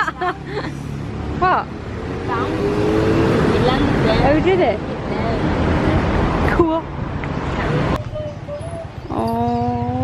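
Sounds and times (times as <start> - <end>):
low traffic rumble: 0.0 - 10.0
vehicle engine drone passing: 0.3 - 7.0.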